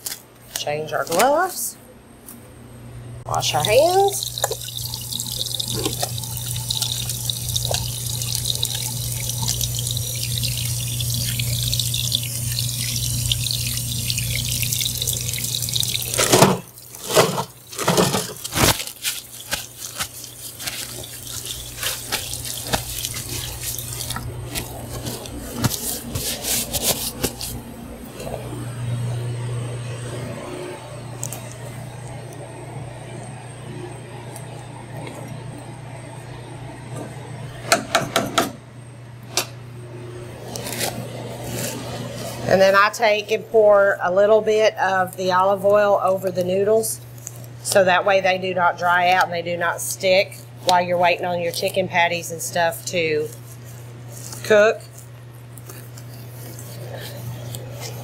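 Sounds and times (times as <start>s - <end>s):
steady low hum: 0.0s - 58.0s
tap water running into sink: 3.3s - 27.4s
paper towels tearing and rustling: 15.4s - 27.8s, 40.4s - 42.5s, 53.3s - 58.0s.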